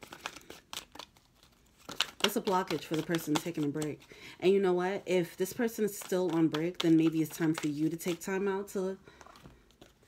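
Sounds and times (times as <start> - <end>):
cards being shuffled: 0.0 - 4.1, 5.4 - 8.5, 9.2 - 10.0.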